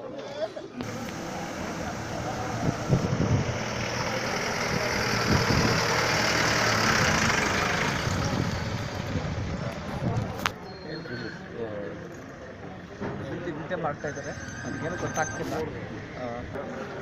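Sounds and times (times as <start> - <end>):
jeep driving past: 0.8 - 9.9.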